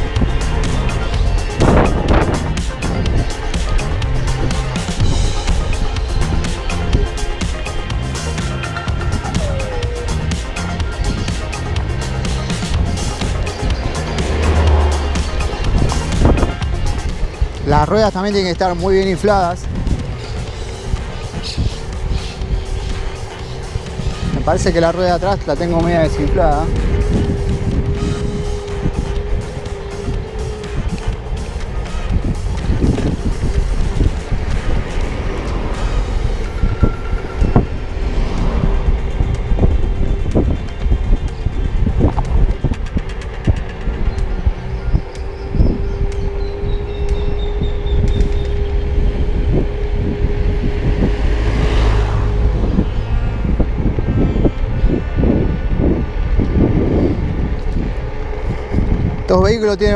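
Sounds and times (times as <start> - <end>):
road rumble: 0.0 - 59.9
wind buffeting microphone: 0.0 - 59.9
electric scooter motor whine: 26.1 - 59.3.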